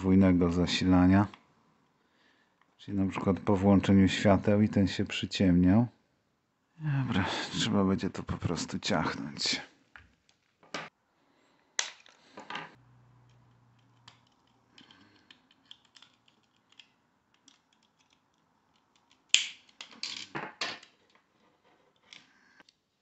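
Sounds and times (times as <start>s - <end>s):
faint ticking and scraping: 12.4s - 20.0s
plastic snaps and clicks: 15.3s - 20.1s.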